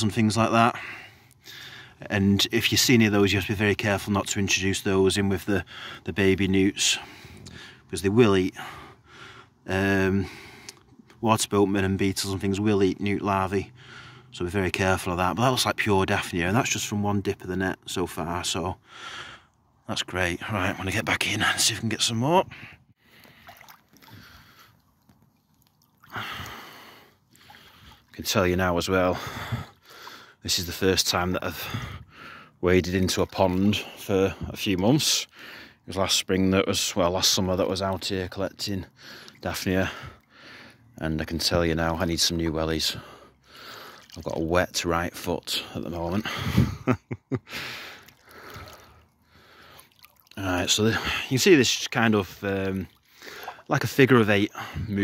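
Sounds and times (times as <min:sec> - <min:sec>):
boots sloshing through water: 0:23.0 - 0:28.6, 0:43.0 - 0:45.2, 0:47.7 - 0:51.2, 0:51.8 - 0:55.0
net swishing through water: 0:23.2 - 0:26.2, 0:49.8 - 0:50.4
water splash: 0:23.2 - 0:28.2, 0:43.8 - 0:44.4, 0:47.8 - 0:51.1, 0:51.8 - 0:54.0.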